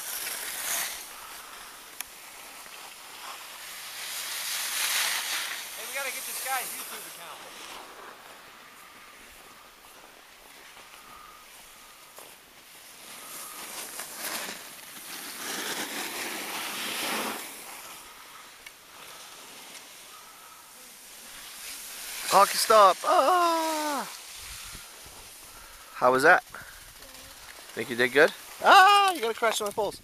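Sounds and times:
skis scraping on snow: 0:00.0 - 0:30.0
wind on microphone: 0:24.4 - 0:25.2.

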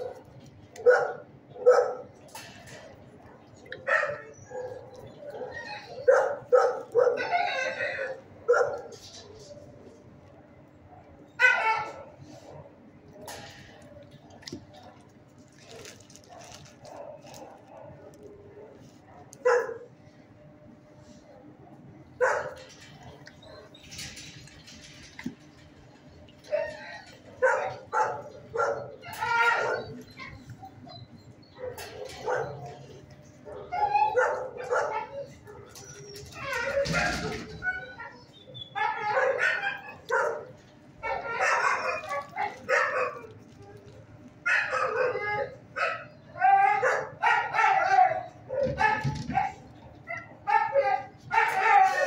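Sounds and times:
dogs barking: 0:00.0 - 0:20.0, 0:21.3 - 0:52.0.

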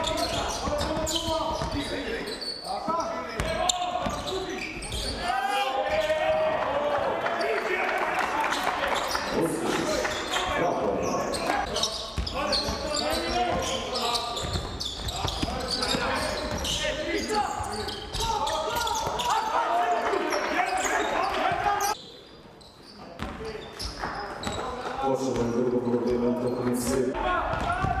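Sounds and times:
basketball bouncing on wooden court: 0:00.0 - 0:02.0, 0:03.3 - 0:05.0, 0:14.4 - 0:16.8, 0:23.2 - 0:24.6, 0:27.4 - 0:28.0
players shouting: 0:15.2 - 0:22.0, 0:27.1 - 0:28.0.

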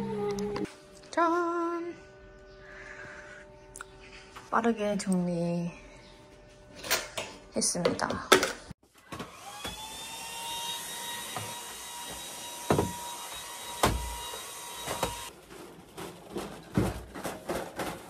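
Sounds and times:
vacuum cleaner whining: 0:08.9 - 0:15.3
vacuum knocking on floor: 0:11.3 - 0:13.0.

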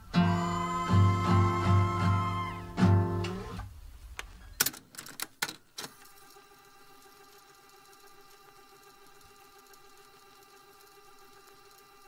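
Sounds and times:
held tones: 0:00.0 - 0:03.6.

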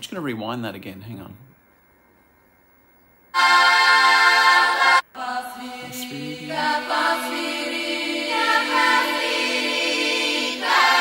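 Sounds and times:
women's folk choir held chord: 0:03.3 - 0:11.0.

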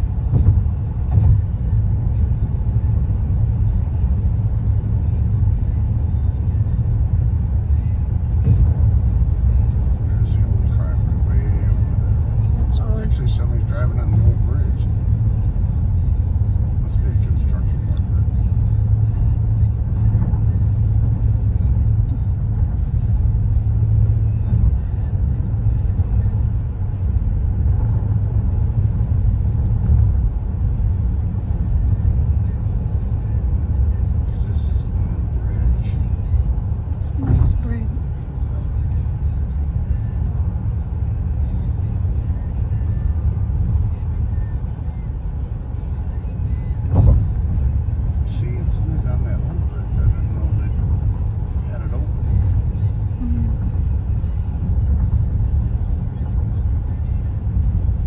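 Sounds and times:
car road rumble from inside: 0:00.0 - 0:58.0.

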